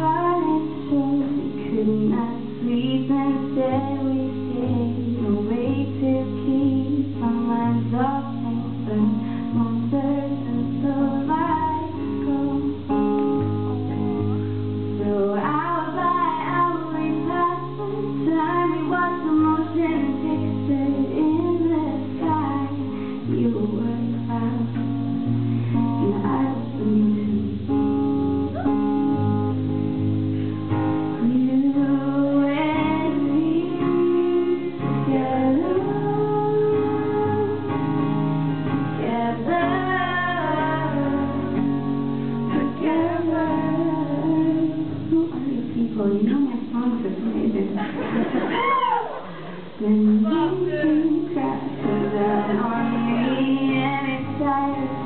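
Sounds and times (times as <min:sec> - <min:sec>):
woman singing: 0:00.0 - 0:14.3, 0:14.9 - 0:29.0, 0:31.1 - 0:37.9, 0:39.0 - 0:49.0, 0:49.8 - 0:55.0
strummed acoustic guitar: 0:00.0 - 0:48.5, 0:49.4 - 0:55.0.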